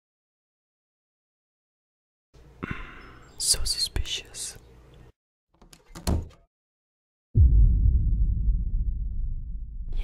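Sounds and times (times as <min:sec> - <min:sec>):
door shutting with thud: 0:05.8 - 0:06.4
door knocks: 0:05.9 - 0:06.4.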